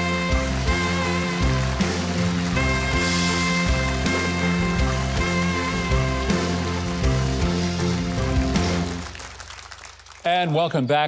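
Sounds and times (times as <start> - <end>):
band playing instrumental: 0.0 - 9.4.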